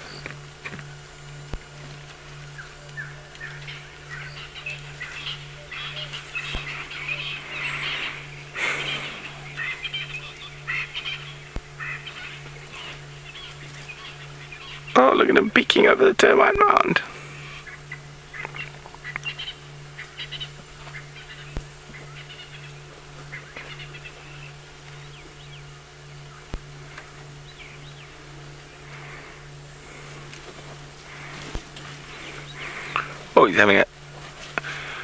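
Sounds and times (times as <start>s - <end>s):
pulsing low hum: 0.0s - 35.0s
bird chirps and calls: 2.5s - 15.1s, 17.4s - 26.5s, 27.3s - 28.9s
faint clicks: 18.4s - 19.4s.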